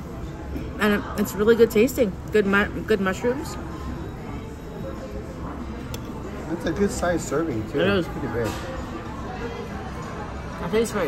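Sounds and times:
murmur of diners' voices: 0.0s - 11.0s.

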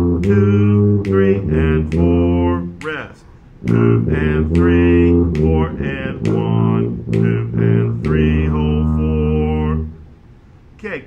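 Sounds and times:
tuba holding low note: 0.0s - 2.8s, 3.6s - 10.2s
play-along backing recording: 0.0s - 11.0s.

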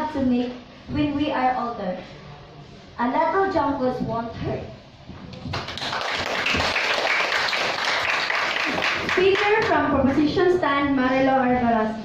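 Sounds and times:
audience applauding: 5.5s - 9.7s.

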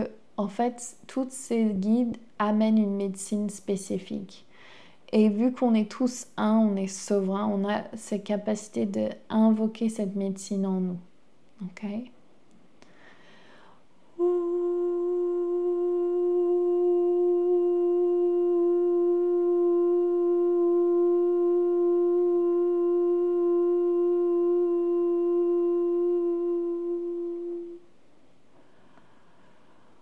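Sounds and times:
woman singing long held note: 14.2s - 27.9s.

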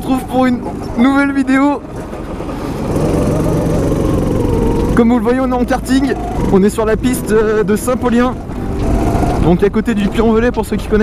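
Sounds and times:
go-kart engine running: 0.0s - 10.6s.

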